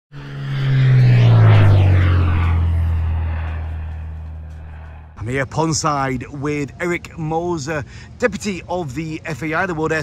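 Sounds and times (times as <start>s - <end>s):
aircraft flying past: 0.1s - 6.0s.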